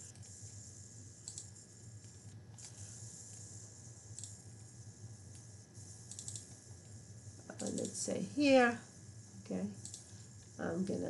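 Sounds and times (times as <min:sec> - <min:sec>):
low electrical hum: 0:00.0 - 0:11.0
computer mouse clicks: 0:01.2 - 0:03.5, 0:04.1 - 0:04.7, 0:06.1 - 0:08.0, 0:09.8 - 0:10.6.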